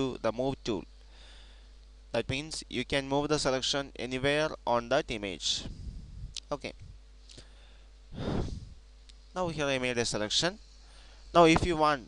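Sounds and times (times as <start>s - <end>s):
faint electrical hum: 0.0s - 12.0s
man breathing into microphone: 1.0s - 1.8s, 7.3s - 8.8s, 10.8s - 11.4s.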